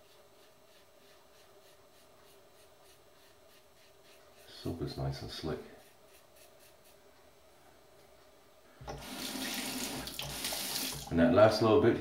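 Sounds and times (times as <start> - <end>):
tap water running into sink: 8.8 - 11.1.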